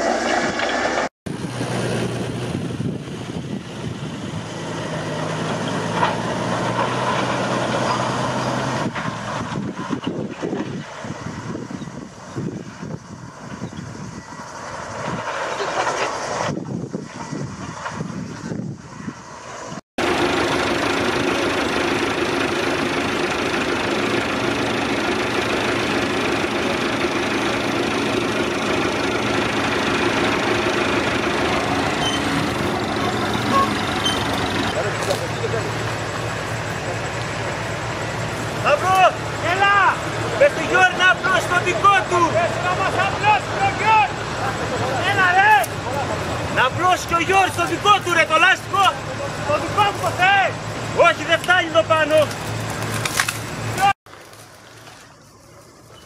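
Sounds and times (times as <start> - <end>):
earthmover diesel engine running: 0.0 - 56.0
tractor engine drone: 0.0 - 56.0.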